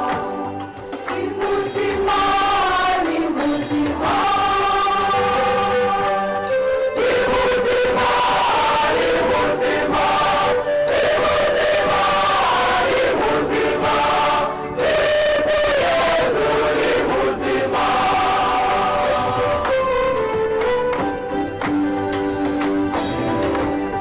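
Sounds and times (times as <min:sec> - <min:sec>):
congregation clapping: 0:00.0 - 0:05.7, 0:07.0 - 0:24.0
choir singing a hymn: 0:00.0 - 0:20.4.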